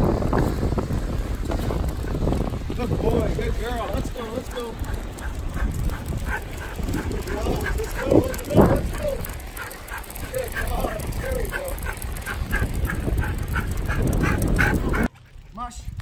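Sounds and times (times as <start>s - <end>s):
rig wheels rumbling on pavement: 0.0s - 15.1s.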